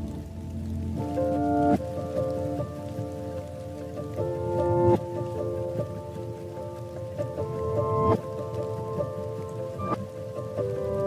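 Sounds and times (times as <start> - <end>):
rain pattering: 0.0 - 11.0
soft slow chord music: 0.0 - 11.0.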